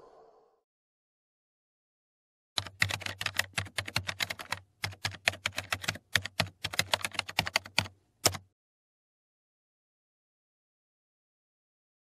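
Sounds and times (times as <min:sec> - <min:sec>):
computer keyboard key clicks: 0:02.6 - 0:08.4.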